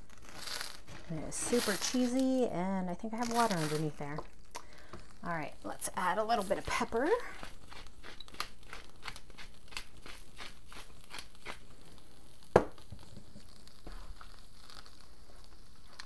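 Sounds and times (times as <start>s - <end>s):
pepper mill grinding: 6.0s - 11.7s.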